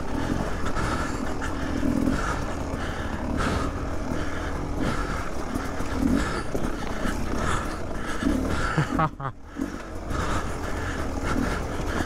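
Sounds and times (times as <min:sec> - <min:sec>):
dirt bike engine running: 0:00.0 - 0:12.0.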